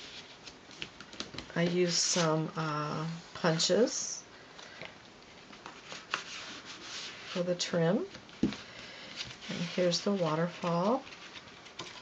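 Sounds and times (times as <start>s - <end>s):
paper rubbing and sliding: 5.6s - 7.4s.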